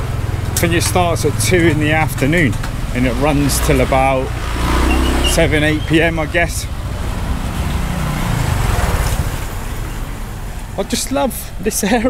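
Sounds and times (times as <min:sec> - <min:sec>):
motor scooter passing: 0:00.0 - 0:10.8
street traffic rumble: 0:00.0 - 0:12.0.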